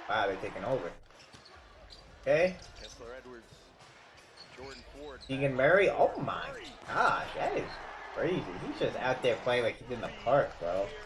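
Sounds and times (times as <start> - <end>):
commentator talking: 0.0 - 1.0, 4.7 - 11.0.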